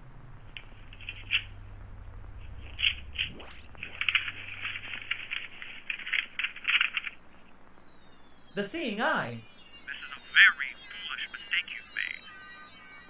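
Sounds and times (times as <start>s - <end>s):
rising electronic sweep: 0.0s - 5.8s
low hum: 0.0s - 8.8s
electronic chirps: 0.4s - 13.0s.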